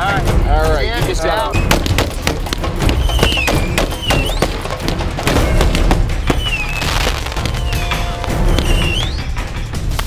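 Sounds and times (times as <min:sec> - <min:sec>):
pyrotechnic bangs and pops: 0:01.6 - 0:10.0
descending whistling tone: 0:03.0 - 0:04.5, 0:07.7 - 0:09.4.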